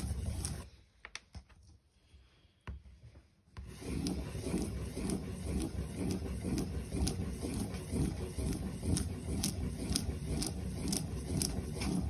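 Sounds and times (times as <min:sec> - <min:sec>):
crayon scribbling on paper: 0:03.7 - 0:12.0.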